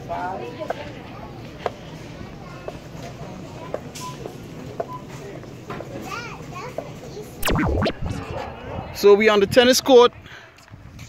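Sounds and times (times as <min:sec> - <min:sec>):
sweeping sound with swinging pitch: 0:07.4 - 0:09.2.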